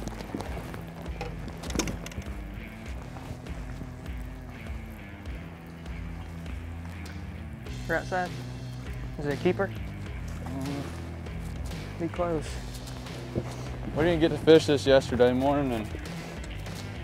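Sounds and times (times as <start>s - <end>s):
background music low chords: 0.0s - 17.0s.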